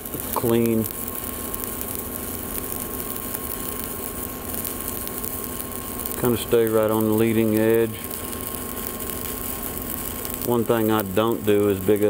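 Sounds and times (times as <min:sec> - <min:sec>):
welding arc crackling: 0:00.0 - 0:12.0.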